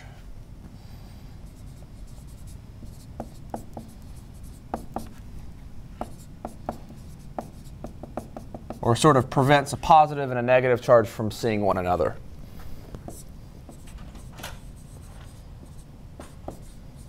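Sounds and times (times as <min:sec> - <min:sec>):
marker scratching on whiteboard: 0:01.5 - 0:05.2, 0:06.0 - 0:09.0, 0:12.9 - 0:17.0.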